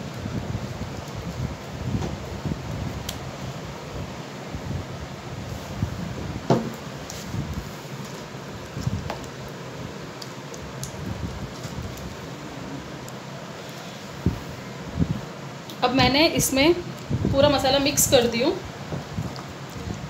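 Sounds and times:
fan-like hum: 0.0s - 20.0s.

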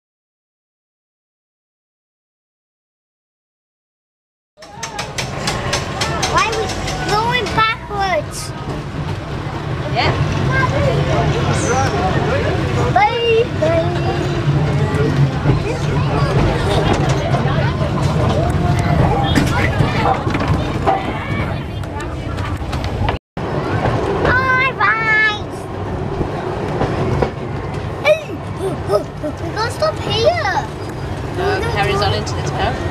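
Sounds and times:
electric tram rumbling: 4.6s - 32.9s
voices talking: 4.6s - 32.9s.

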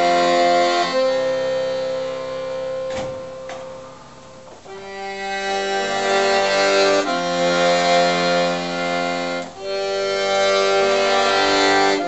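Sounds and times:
accordion sustained note: 0.0s - 12.0s.

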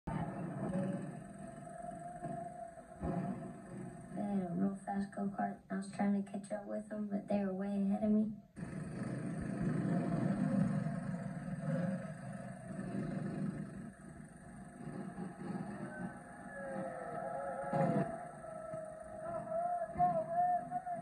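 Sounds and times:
go-kart engines running: 0.1s - 4.7s, 8.6s - 21.0s.

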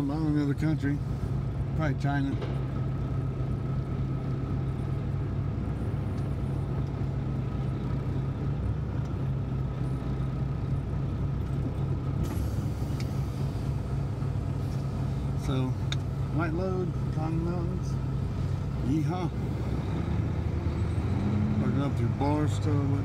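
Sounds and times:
diesel engine drone: 0.0s - 23.0s.

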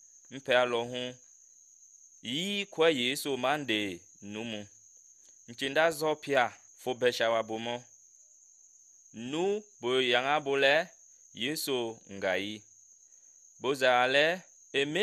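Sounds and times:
man speaking: 0.3s - 1.2s, 2.2s - 4.7s, 5.5s - 7.8s, 9.2s - 12.6s, 13.6s - 15.0s.

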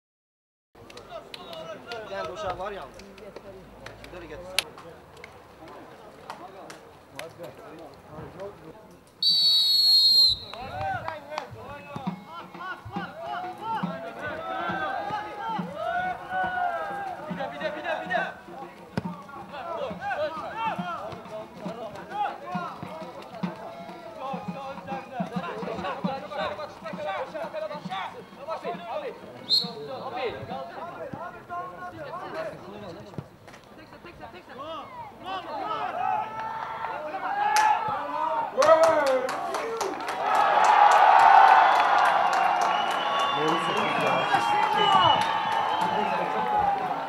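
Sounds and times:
crowd cheering and clapping: 13.0s - 17.8s, 36.0s - 47.0s.

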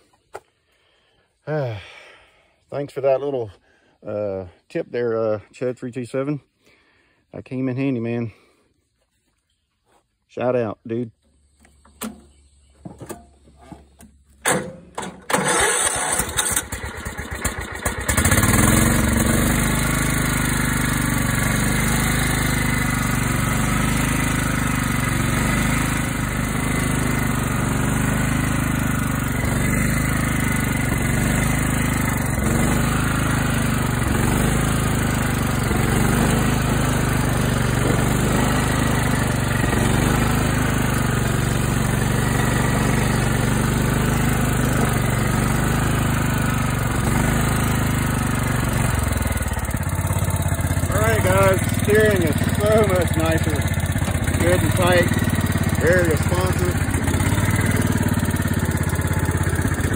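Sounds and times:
lawn mower engine running: 11.4s - 59.9s
engine starter cranking: 14.3s - 20.0s.

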